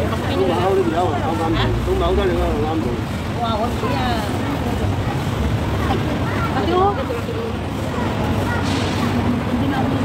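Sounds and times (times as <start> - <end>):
women chatting: 3.3 - 10.0.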